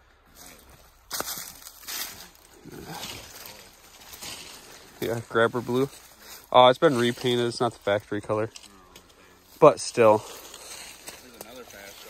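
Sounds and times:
branches rustling and scraping: 0.0s - 12.0s.

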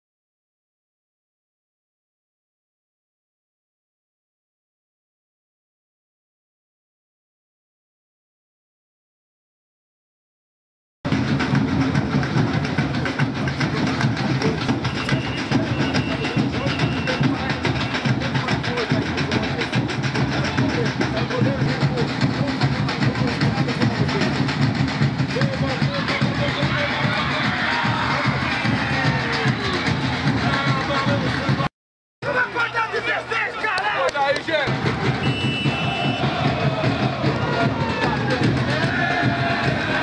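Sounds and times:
bass drums beating: 11.1s - 32.4s, 34.4s - 40.0s
crowd chanting and singing: 11.4s - 40.0s.

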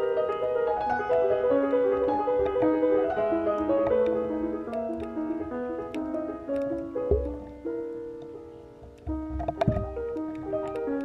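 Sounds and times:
solo piano music: 0.0s - 11.0s.

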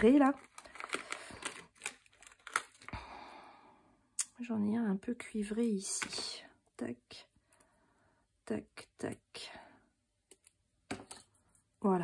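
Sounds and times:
plastic bag crinkling: 0.0s - 3.0s.

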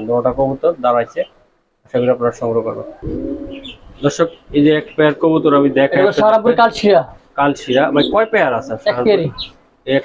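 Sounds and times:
pigeon cooing: 2.7s - 4.0s, 7.6s - 9.5s.

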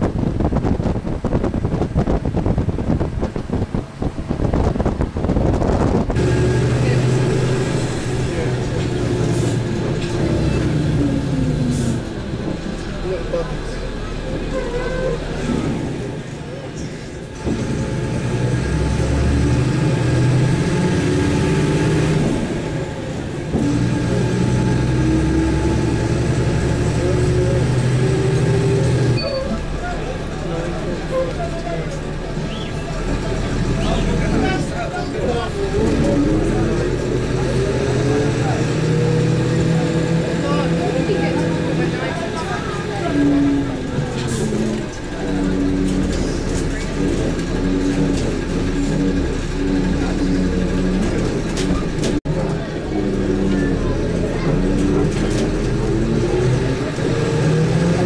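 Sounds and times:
vehicle engine and road noise: 0.0s - 58.0s
indistinct voices: 5.8s - 58.0s.

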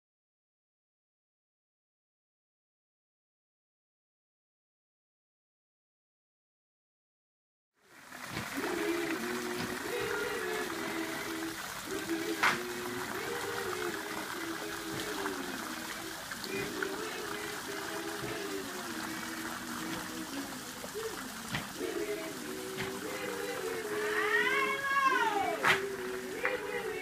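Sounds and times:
steady hiss: 7.8s - 27.0s
group singing in harmony: 8.1s - 27.0s.

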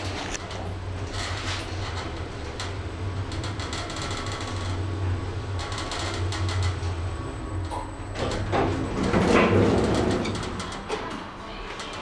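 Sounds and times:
lift car clicking and rattling: 0.0s - 4.9s, 5.6s - 7.0s, 7.6s - 12.0s
lift car humming: 0.0s - 12.0s.

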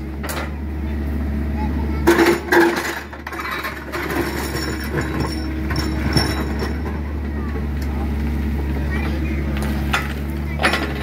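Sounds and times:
excavator diesel engine running: 0.0s - 11.0s.

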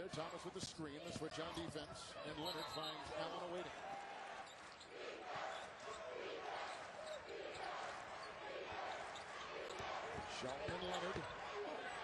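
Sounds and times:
arena crowd noise: 0.0s - 12.0s
basketball bouncing on court: 9.7s - 11.4s.

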